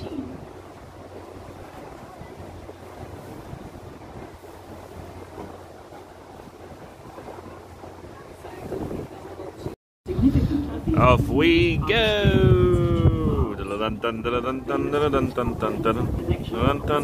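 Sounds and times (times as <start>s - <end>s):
boat engine hum: 0.0s - 17.0s
wind rushing over microphone: 0.0s - 17.0s.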